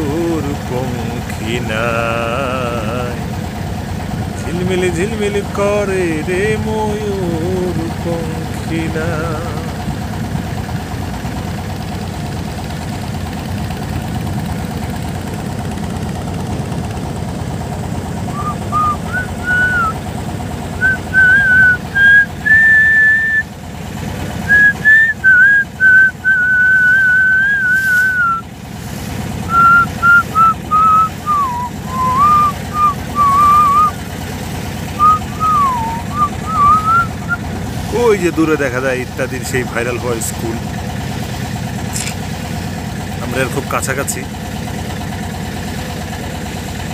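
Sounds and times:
boat engine drone: 0.0 - 46.9
person whistling a tune: 18.3 - 20.0, 20.8 - 23.5, 24.5 - 28.4, 29.5 - 34.0, 35.0 - 37.4.

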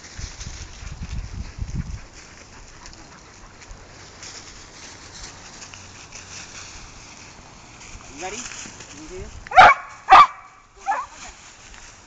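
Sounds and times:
wind buffeting microphone: 0.0 - 4.0
dogs rustling dry leaves: 0.0 - 12.0.

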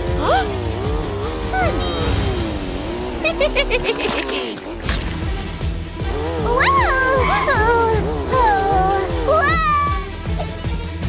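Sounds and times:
cartoon car engine: 0.0 - 5.0, 6.0 - 10.0
background music: 0.0 - 11.0.

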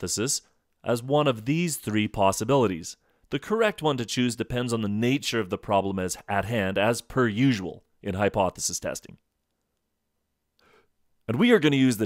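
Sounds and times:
faint intake of breath: 10.6 - 11.0.

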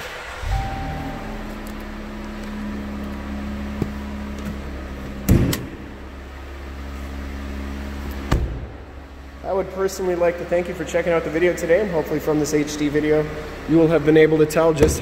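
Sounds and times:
car engine idling: 0.0 - 15.0
car door shutting: 0.4 - 5.9, 8.2 - 8.8.

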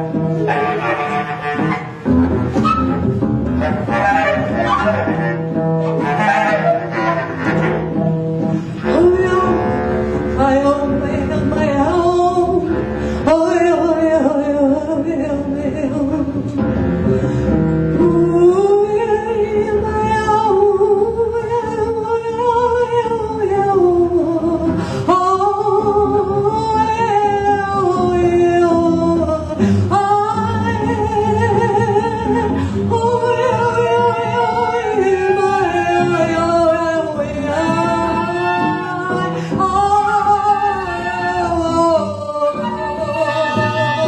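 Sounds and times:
double bass: 0.0 - 44.0
free jazz trio improvising: 0.1 - 11.1.

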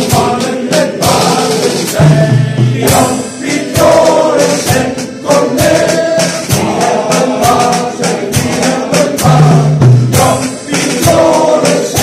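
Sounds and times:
drum and cymbal strikes: 0.0 - 12.0
male choir singing in unison: 0.0 - 12.0.

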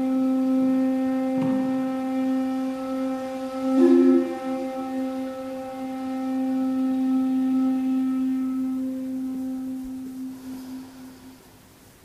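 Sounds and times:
bamboo flute long low note: 0.0 - 12.0.

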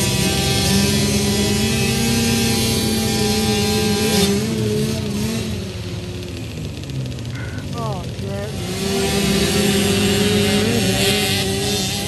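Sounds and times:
motocross bikes running: 0.0 - 12.0.

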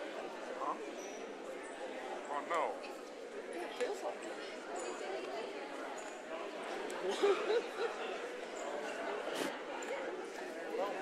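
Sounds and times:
many people talking: 0.0 - 11.0.

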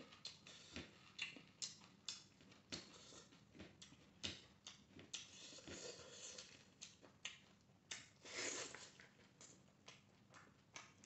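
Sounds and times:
man chewing with wet mouth smacks: 0.1 - 11.0.

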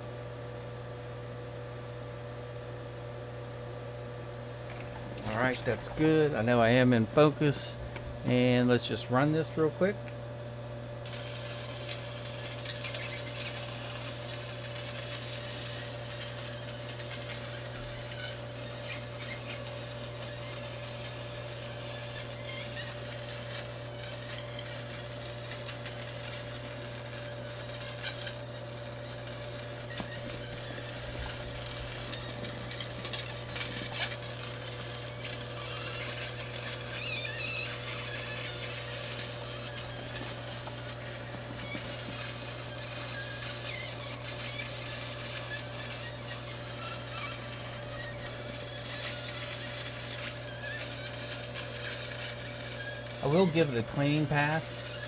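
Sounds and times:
machine humming: 0.0 - 55.0
laser engraving metal hiss: 11.0 - 55.0.

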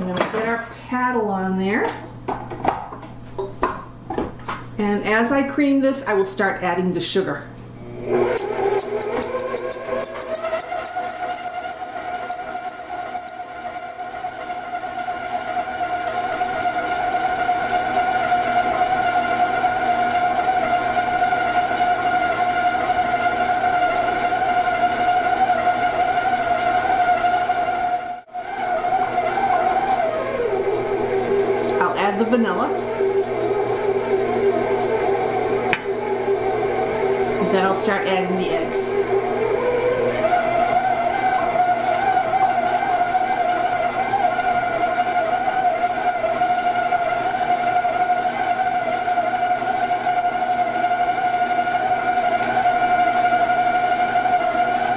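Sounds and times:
stand mixer motor whining: 7.8 - 12.3, 14.7 - 31.8, 32.8 - 37.5, 38.9 - 54.9.

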